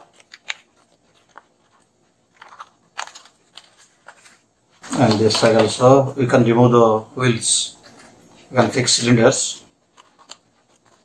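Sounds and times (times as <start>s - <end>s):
stiff paper crinkling: 0.0s - 6.0s, 9.8s - 11.0s.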